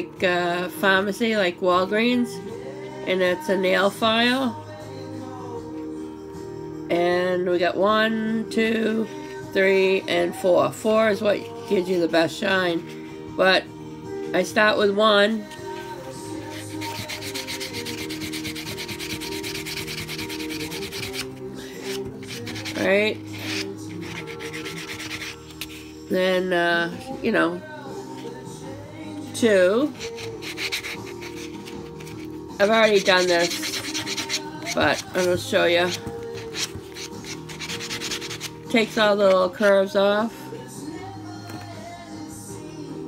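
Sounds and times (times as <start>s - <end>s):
background music with held tones: 0.0s - 43.0s.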